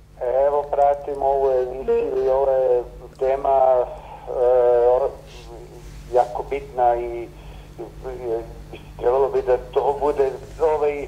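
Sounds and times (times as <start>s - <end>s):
steady low hum: 0.0s - 11.0s
man speaking over telephone: 0.2s - 11.0s.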